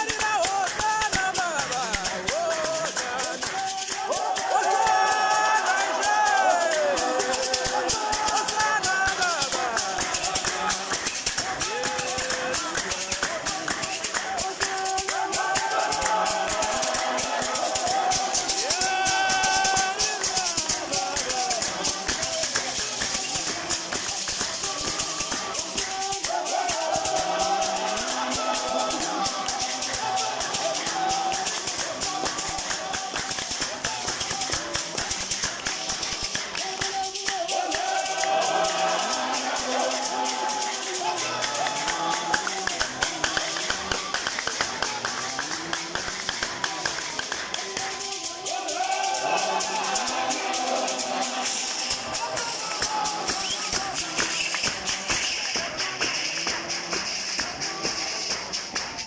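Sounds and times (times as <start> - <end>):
congregation singing a hymn: 0.0 - 59.0
hand rattles shaking a beat: 0.0 - 59.0.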